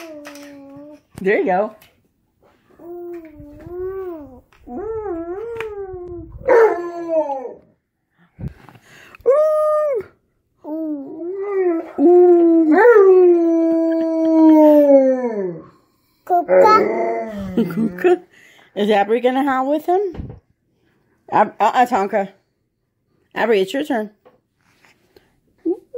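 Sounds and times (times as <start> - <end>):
dog howling: 4.0 - 7.7, 10.9 - 15.7, 16.4 - 17.8.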